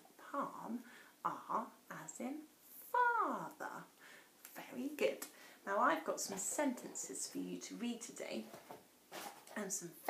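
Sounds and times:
woman speaking syllables: 0.2s - 3.9s.

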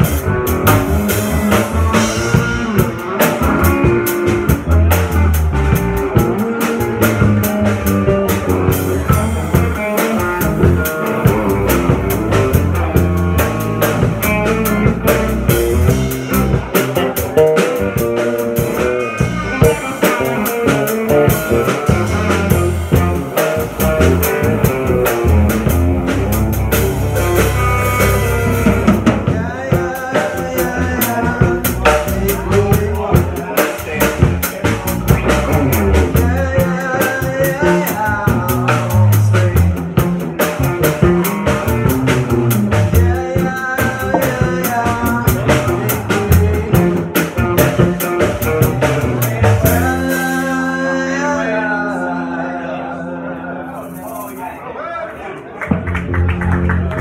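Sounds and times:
live band playing: 0.0s - 54.7s, 55.6s - 57.0s.

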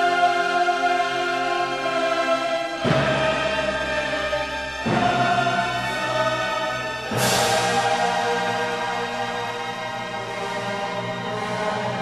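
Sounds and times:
choir and orchestra chord: 0.0s - 12.0s.

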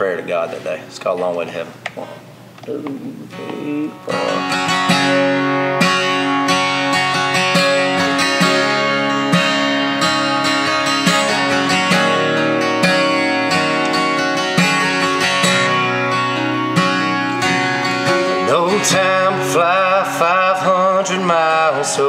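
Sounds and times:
acoustic guitar strumming: 0.0s - 22.0s
person counting in: 2.0s - 4.6s.

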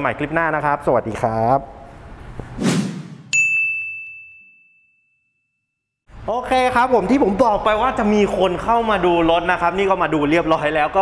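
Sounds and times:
bright bell ding: 3.3s - 5.8s.

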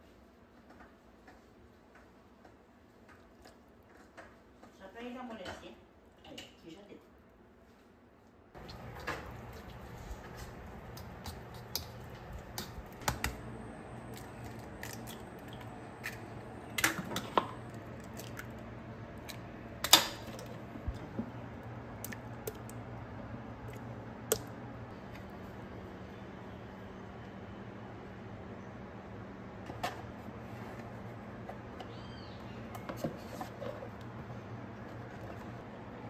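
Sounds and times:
steady low hum: 7.1s - 36.0s.

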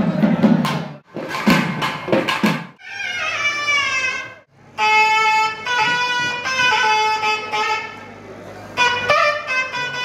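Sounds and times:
barrel drums beaten quickly: 0.1s - 2.8s.

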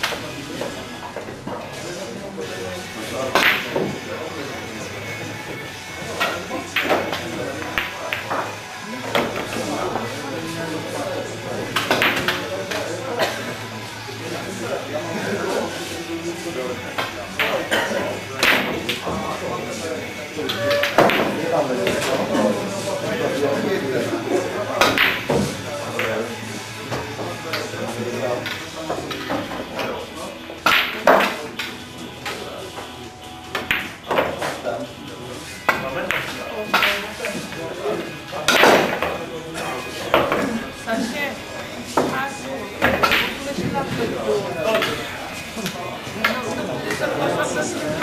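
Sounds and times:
pool balls clacking: 0.0s - 2.1s, 3.0s - 40.7s, 41.6s - 48.0s
cue tips striking balls: 3.3s - 4.1s, 5.5s - 12.9s, 16.9s - 19.7s, 20.4s - 22.3s, 24.7s - 32.9s, 33.5s - 34.6s, 35.6s - 37.6s, 38.4s - 39.2s, 42.8s - 44.1s.

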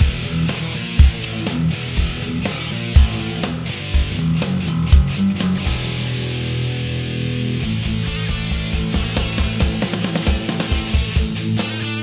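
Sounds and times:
backing track with drums: 0.0s - 12.0s
distorted electric guitar riff: 0.0s - 12.0s
fast kick drum hits: 1.0s - 1.4s, 3.0s - 6.4s.

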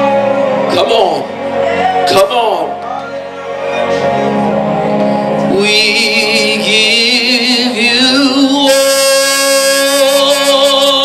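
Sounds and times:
man singing into microphone: 5.4s - 11.0s.

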